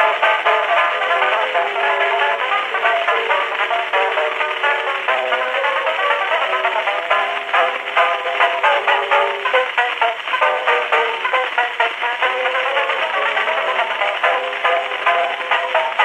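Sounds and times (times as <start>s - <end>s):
banjo ragtime on phonograph: 0.0s - 16.0s.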